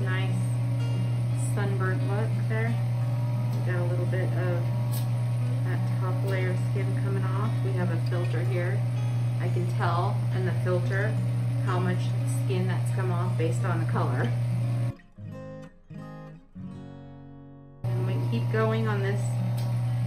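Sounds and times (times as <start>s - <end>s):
steady low machine hum: 0.0s - 15.0s, 17.8s - 20.0s
background music with guitar: 0.0s - 20.0s.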